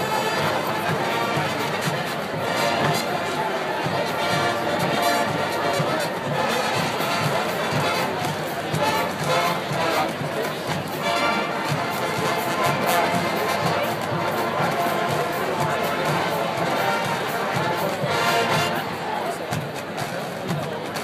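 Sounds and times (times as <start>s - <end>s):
crowd noise and chatter: 0.0s - 21.0s
marching band playing brass tune: 0.0s - 21.0s.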